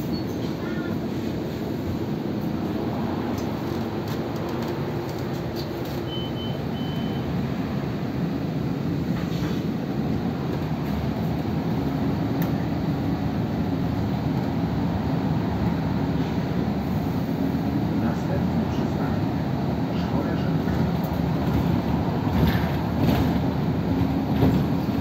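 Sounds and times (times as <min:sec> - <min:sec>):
bus engine and road rumble: 0:00.0 - 0:25.0
short high beeps: 0:06.1 - 0:07.3.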